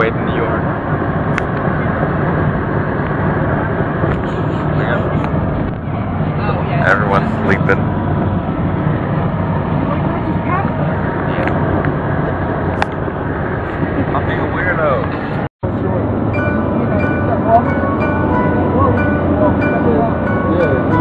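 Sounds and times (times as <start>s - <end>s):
passengers' voices: 0.0s - 21.0s
vehicle road and engine noise: 0.0s - 21.0s.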